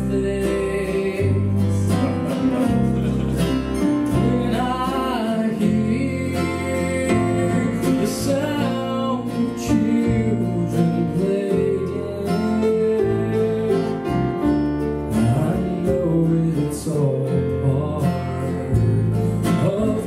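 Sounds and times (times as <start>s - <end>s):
acoustic guitar strumming: 0.0s - 20.0s
man singing slow melody: 0.0s - 20.0s
sustained low notes: 1.6s - 5.1s.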